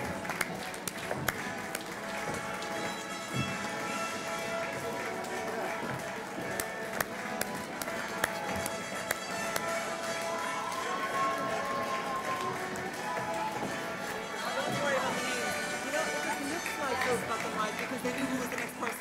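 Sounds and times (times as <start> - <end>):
crowd chatter: 0.0 - 19.0
music in a large hall: 0.0 - 19.0.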